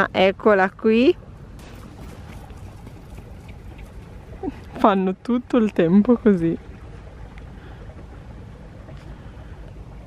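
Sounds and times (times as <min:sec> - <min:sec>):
wind buffeting microphone: 0:01.0 - 0:10.0.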